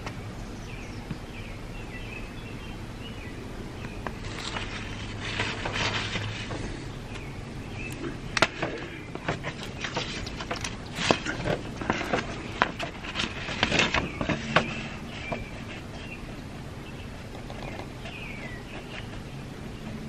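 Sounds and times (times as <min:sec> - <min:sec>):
objects handled on a tabletop: 0:04.0 - 0:07.2, 0:08.4 - 0:16.2
faint bird chirps: 0:13.9 - 0:20.0.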